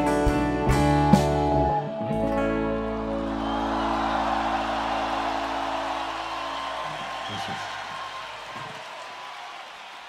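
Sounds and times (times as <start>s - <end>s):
large crowd cheering: 2.7s - 10.0s.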